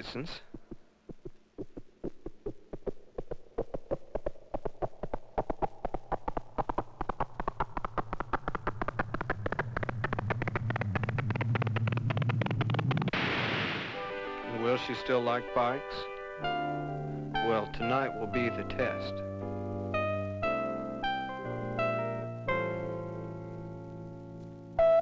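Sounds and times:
low hum: 0.4 - 14.7
rapid rising pulses: 1.6 - 14.5.

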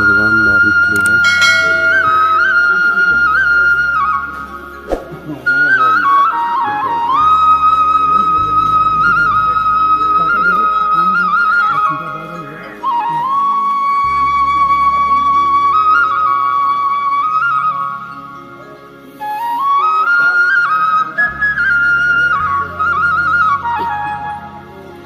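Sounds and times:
slow flute melody: 0.0 - 25.0.

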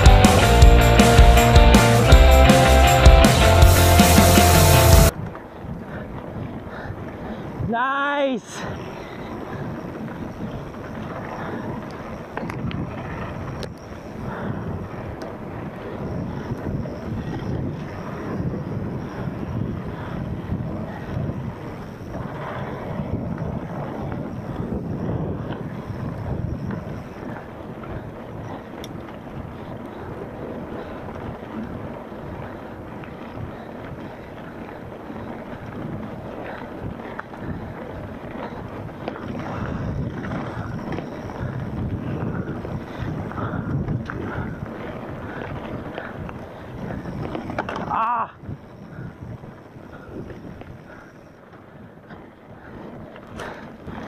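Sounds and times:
wheels knocking on bumps: 0.0 - 7.2, 9.2 - 54.0
bike rumbling and rattling: 0.0 - 54.0
wind buffeting microphone: 0.0 - 54.0.

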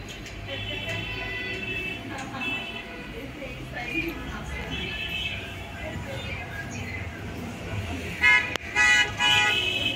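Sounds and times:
vehicle horn honking: 0.6 - 3.1, 8.2 - 9.9.

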